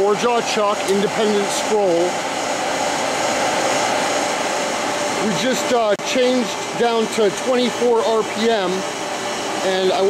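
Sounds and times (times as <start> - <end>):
lathe running with whine: 0.0 - 10.0.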